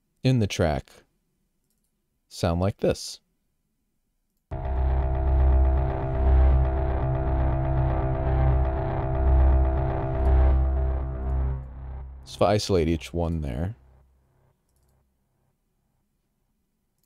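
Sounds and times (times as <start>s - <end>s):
pulsing low bass: 4.5s - 13.4s
synthesized cinematic arpeggio: 4.5s - 14.0s.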